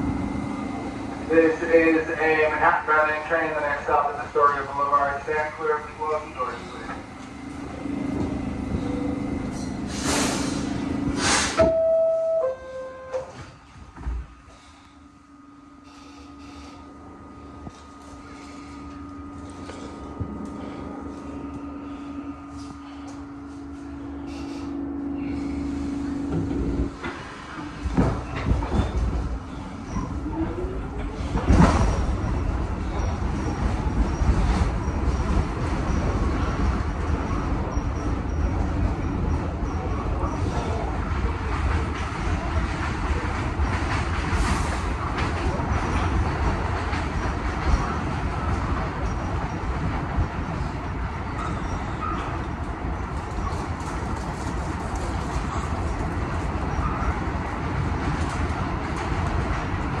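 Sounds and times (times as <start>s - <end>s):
train wheels rumbling on rail: 0.0s - 12.0s, 13.1s - 60.0s.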